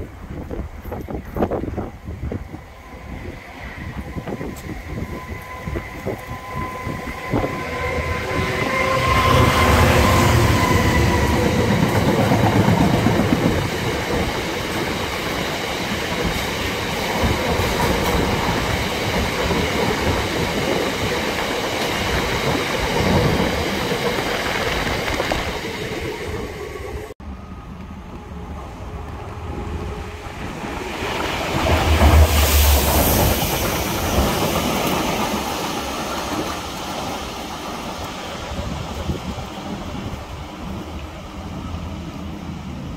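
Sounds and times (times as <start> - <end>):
diesel locomotive passing: 0.0 - 42.9.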